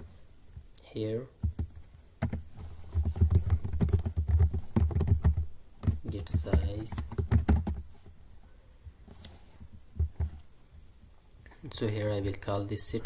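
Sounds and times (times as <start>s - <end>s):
fast typing on keyboard: 1.4s - 7.9s.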